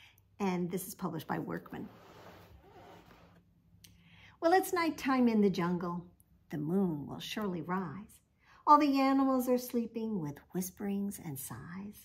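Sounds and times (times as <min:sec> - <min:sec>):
board book pages rustling: 0:01.4 - 0:03.5.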